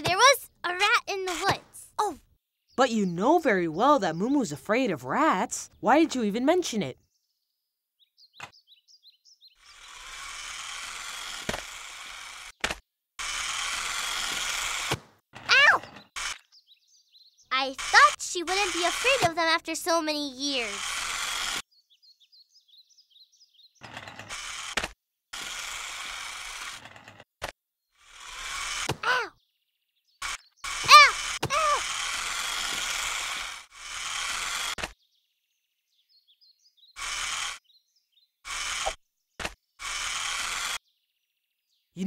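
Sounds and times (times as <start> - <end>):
squeaky sliding tones: 0.0 - 1.8, 17.5 - 21.6, 30.2 - 34.8
toy car electric motor buzzing: 0.0 - 1.8, 9.6 - 16.6, 17.5 - 21.6, 23.8 - 27.3, 28.0 - 29.3, 30.2 - 35.0, 37.0 - 37.7, 38.4 - 40.8.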